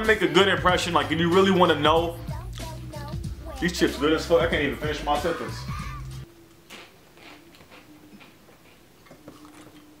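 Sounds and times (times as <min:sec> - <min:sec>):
person crunching potato chips: 0:06.7 - 0:09.9.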